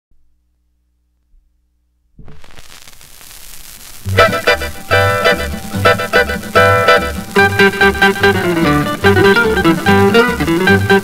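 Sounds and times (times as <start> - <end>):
record surface hiss and crackle: 0.2 - 11.0.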